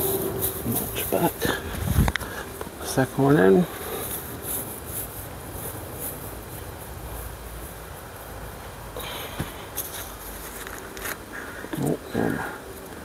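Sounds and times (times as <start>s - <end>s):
straw mulch rustling: 0.0s - 13.0s.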